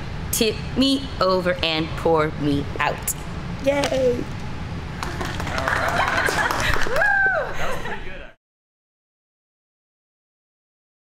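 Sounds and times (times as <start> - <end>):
steady low rumble: 0.0 - 6.3
woman laughing and squealing: 5.6 - 8.0.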